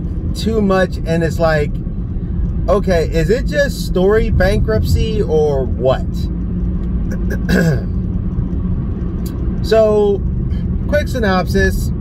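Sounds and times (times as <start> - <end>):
low rumble: 0.0 - 12.0
person clearing throat: 7.1 - 8.0.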